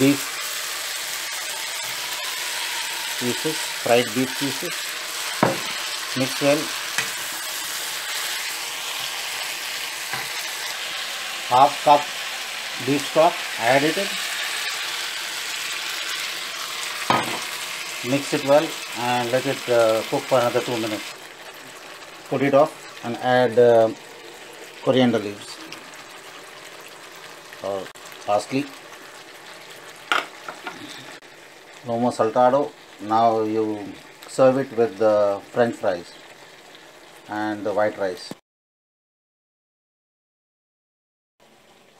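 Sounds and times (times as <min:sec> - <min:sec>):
food sizzling in a frying pan: 0:00.0 - 0:38.4, 0:41.4 - 0:41.9.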